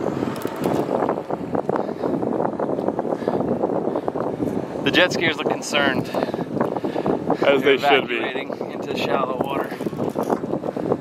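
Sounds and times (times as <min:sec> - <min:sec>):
jet ski engines running: 0:00.0 - 0:11.0.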